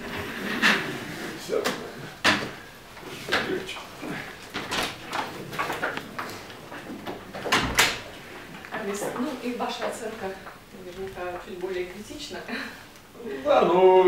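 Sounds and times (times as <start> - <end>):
chairs and furniture being moved: 0.0 - 11.9.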